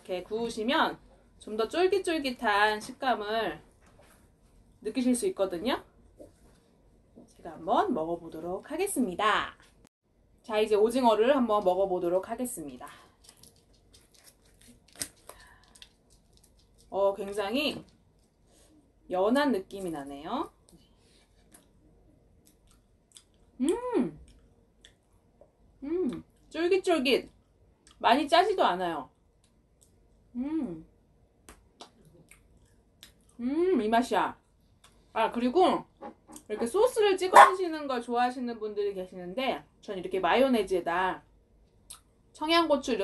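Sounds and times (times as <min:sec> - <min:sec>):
dried squid tearing crackle: 0:13.1 - 0:17.0
mouth clicks from chewing: 0:22.4 - 0:23.4, 0:31.5 - 0:33.4.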